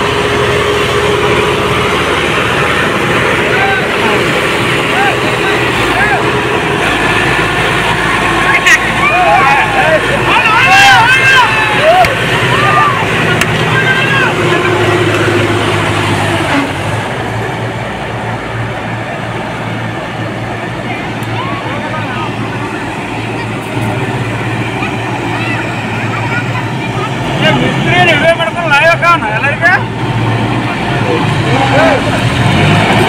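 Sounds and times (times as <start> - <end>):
tractor diesel engines running: 0.0 - 33.0
men shouting: 2.6 - 17.1, 30.8 - 33.0
men's voices: 2.6 - 17.7, 27.0 - 33.0.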